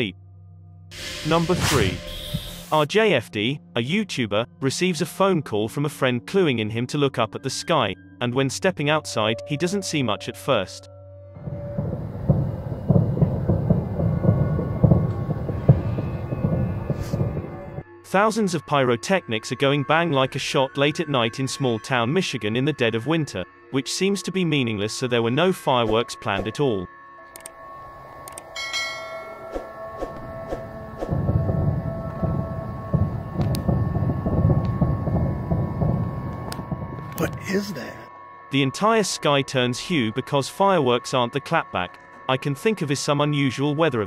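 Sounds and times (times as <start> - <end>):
low rumble: 11.4 - 17.8, 30.0 - 37.4
fireworks bangs and crackle: 11.5 - 17.8, 31.1 - 37.2
distant bangs: 11.7 - 17.8
continuous low rumble: 30.7 - 37.4.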